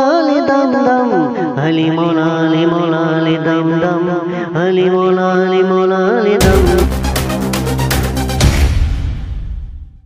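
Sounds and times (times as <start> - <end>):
man chanting: 0.0 - 7.0
steady vocal drone: 6.0 - 7.8.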